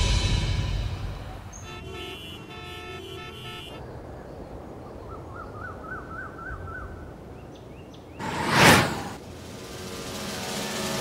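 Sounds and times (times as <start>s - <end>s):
traffic hum: 0.0s - 10.5s
car horns: 1.2s - 3.8s.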